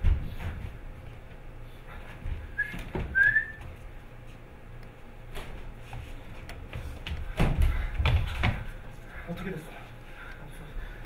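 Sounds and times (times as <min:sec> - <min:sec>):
person whistling short note: 0:02.6 - 0:03.6.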